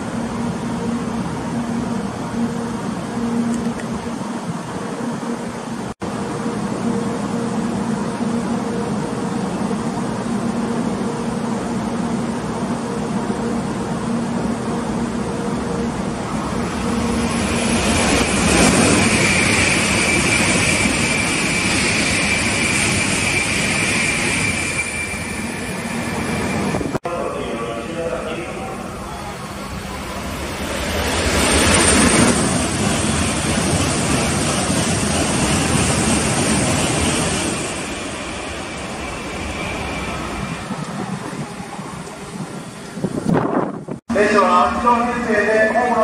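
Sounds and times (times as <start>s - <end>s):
bullet train passing: 0.0s - 46.0s
high train whine: 0.0s - 46.0s.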